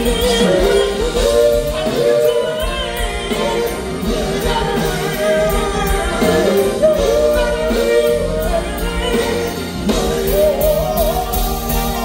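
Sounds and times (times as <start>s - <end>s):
backing band: 0.0s - 12.0s
man singing soul ballad: 0.0s - 12.0s.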